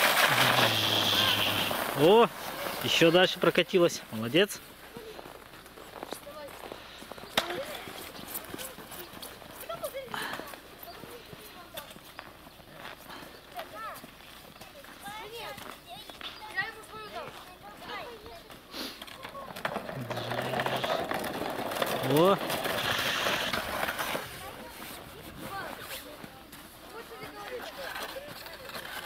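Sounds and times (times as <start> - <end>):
sliding down icy snow slide: 0.0 - 4.3, 17.9 - 29.0
faint children's voices: 0.4 - 1.8, 4.8 - 21.3, 21.9 - 29.0.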